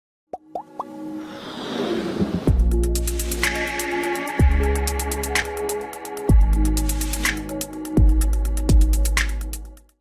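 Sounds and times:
intro music: 2.4s - 9.8s.

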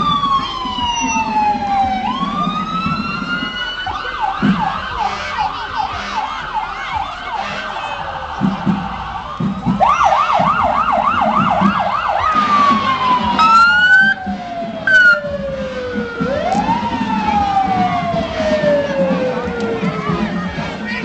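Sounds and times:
emergency vehicle siren: 0.0s - 21.0s.

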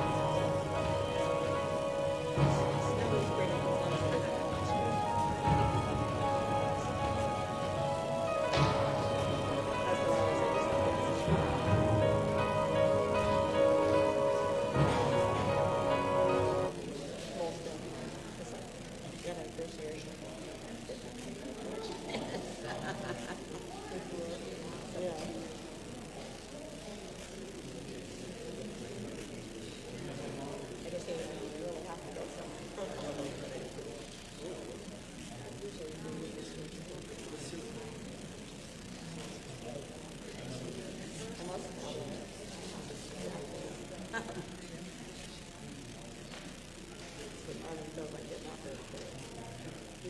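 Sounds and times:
murmur of people talking: 0.0s - 50.0s
steady low hum: 0.0s - 50.0s.

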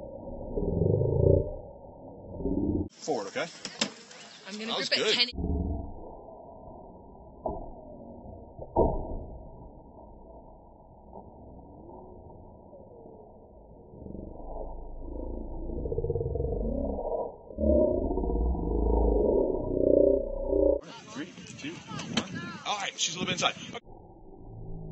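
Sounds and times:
low smeared rumbling: 0.0s - 3.0s, 5.1s - 20.8s.

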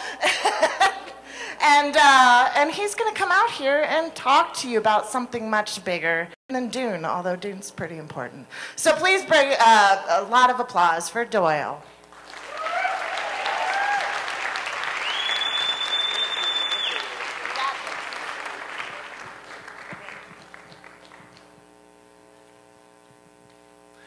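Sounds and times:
faint steady hum: 0.0s - 24.0s
audience applauding: 12.1s - 21.5s
whoops: 12.4s - 17.2s
long high whistle: 14.8s - 17.2s.

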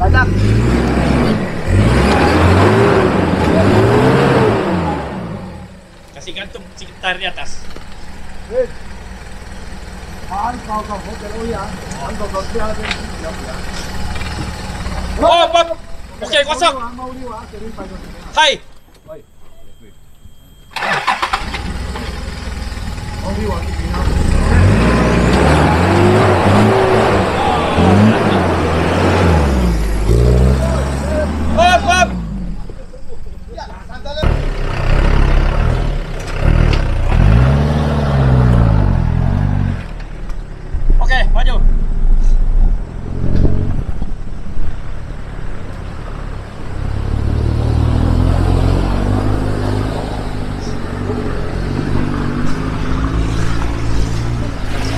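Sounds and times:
off-road engines revving: 0.0s - 54.9s.

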